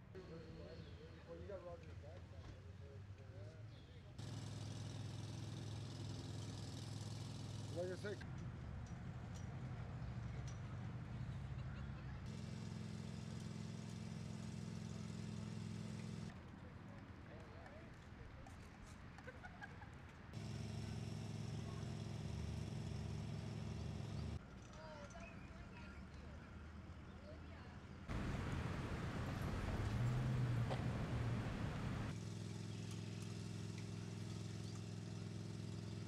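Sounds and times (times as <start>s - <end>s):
vehicle engine idling: 20.4s - 24.4s, 28.1s - 32.2s
faint birds chirping: 28.1s - 32.1s
low outdoor rumble: 28.1s - 32.2s.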